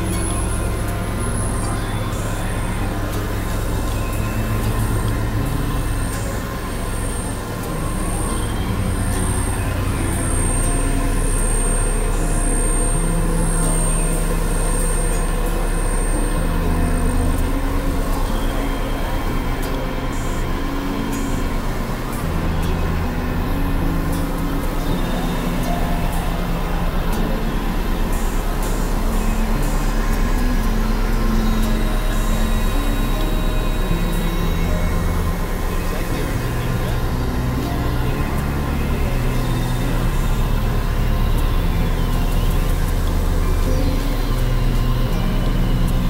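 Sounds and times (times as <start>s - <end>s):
synthesizer drone music: 0.0s - 46.0s.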